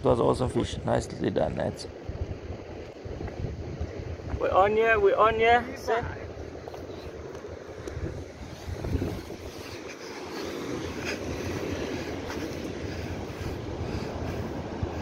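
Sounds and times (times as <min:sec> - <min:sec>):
wind buffeting microphone: 0:00.0 - 0:15.0
surf washing: 0:00.2 - 0:15.0.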